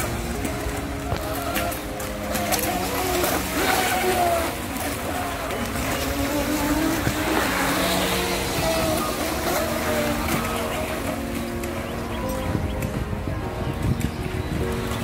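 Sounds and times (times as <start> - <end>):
model speedboat motors buzzing: 0.0 - 12.6.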